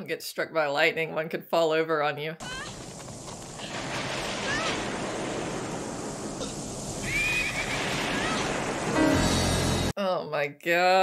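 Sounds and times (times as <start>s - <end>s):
storm wind rushing: 2.7s - 9.9s.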